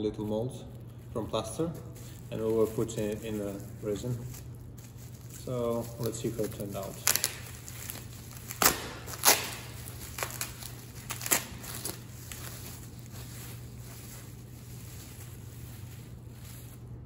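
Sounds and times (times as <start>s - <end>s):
plastic wrapping crinkling: 0.0s - 17.0s.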